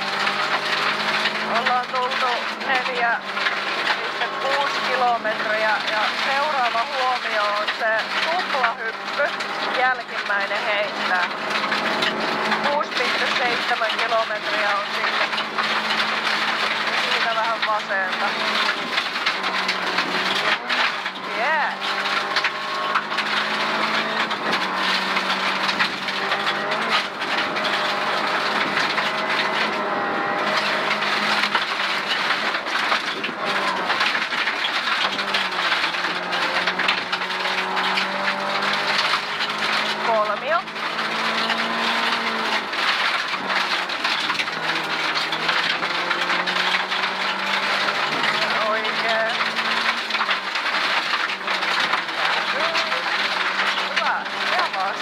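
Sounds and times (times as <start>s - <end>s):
rally car engine revving: 0.0s - 55.0s
stones hitting car underbody: 0.0s - 55.0s.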